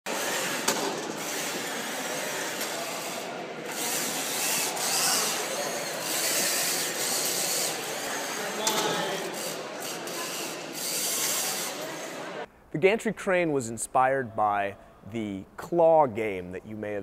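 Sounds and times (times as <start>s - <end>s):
motors whirring and clattering: 0.1s - 12.1s.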